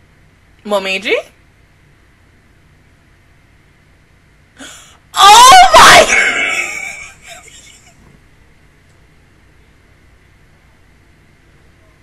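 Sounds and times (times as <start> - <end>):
woman screaming: 4.6 - 7.4.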